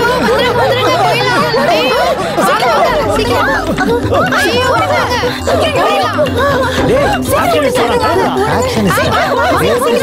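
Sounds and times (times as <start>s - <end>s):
voices shouting and talking: 0.0s - 10.0s.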